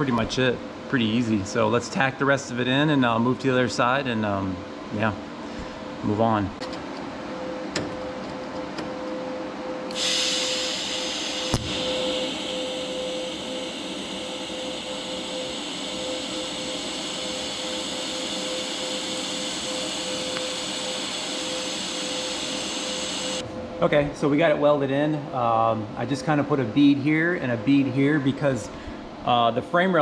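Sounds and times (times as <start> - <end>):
steady hum: 0.0 - 30.0
welding arc hissing: 9.9 - 23.4.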